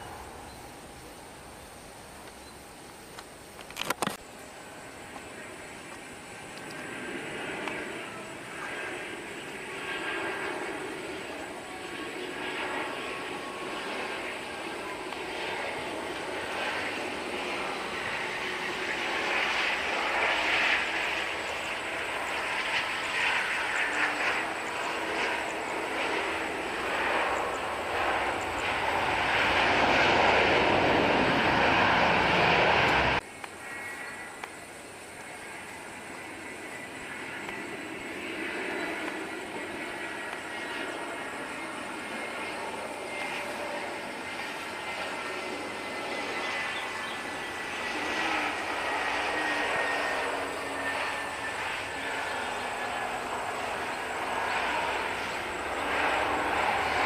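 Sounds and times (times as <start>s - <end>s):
jet engine taking off: 0.0s - 1.9s, 3.9s - 57.0s
jet engines on landing approach: 0.0s - 57.0s.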